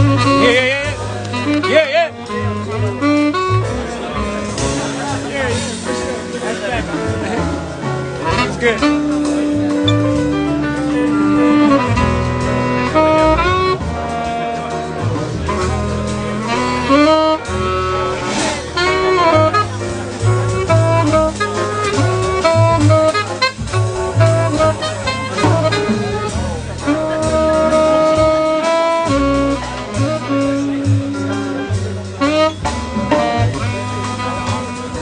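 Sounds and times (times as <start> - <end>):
tenor saxophone soloing: 0.0 - 6.4, 7.7 - 35.0
upright double bass: 0.0 - 35.0.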